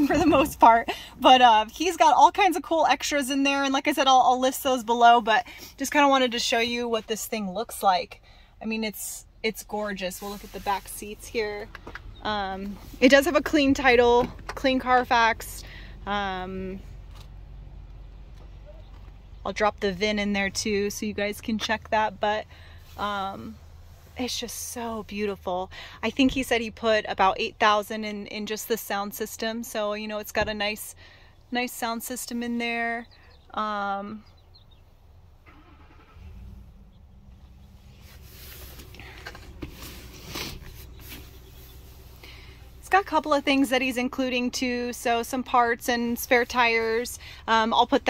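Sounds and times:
motor vehicle engine rumble: 0.0s - 48.0s.

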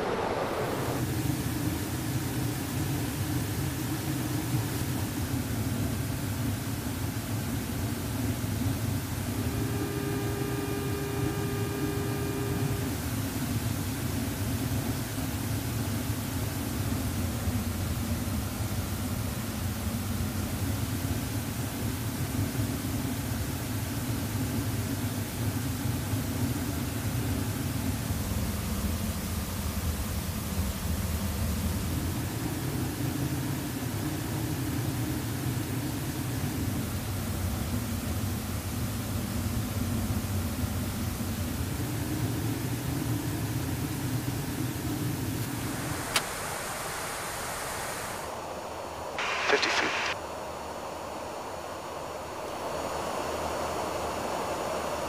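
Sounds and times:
aircraft cabin drone: 0.0s - 55.0s
faint hiss: 30.6s - 55.0s.

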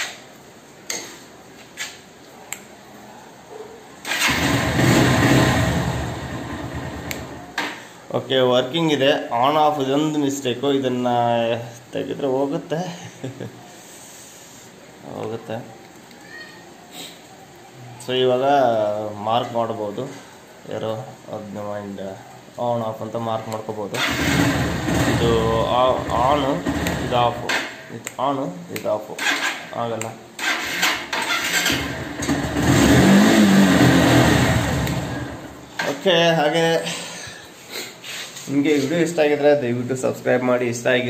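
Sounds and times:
electric starter: 4.1s - 7.4s, 24.0s - 27.7s, 30.4s - 35.6s
motorcycle engine running: 4.3s - 7.4s, 24.0s - 27.2s, 31.8s - 35.6s.

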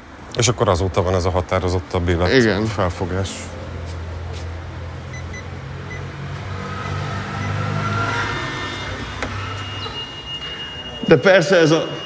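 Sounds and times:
motor vehicle passing: 1.9s - 10.8s.

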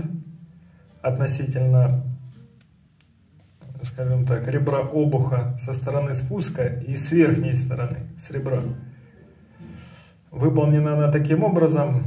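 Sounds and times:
man narrating: 0.0s - 0.3s, 1.0s - 2.2s, 3.6s - 8.9s, 10.3s - 12.0s.

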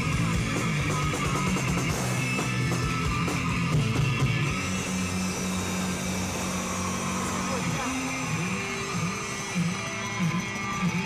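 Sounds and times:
bass guitar: 0.0s - 11.0s
distorted electric guitars: 0.0s - 11.0s.

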